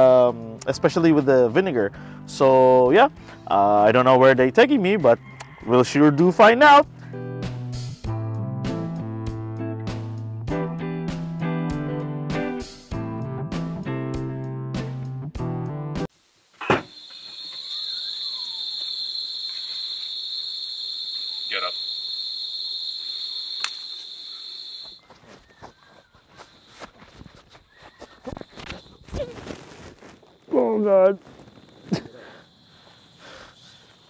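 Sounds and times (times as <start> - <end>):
high-pitched insect drone: 16.6 - 25.0, 30.4 - 34.0.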